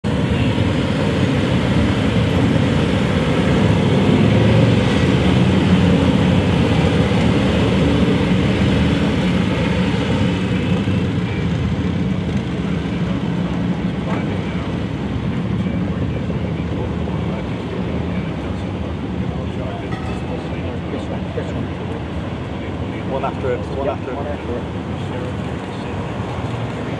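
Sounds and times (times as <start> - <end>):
motorcycle and car engines passing: 0.1 - 18.2.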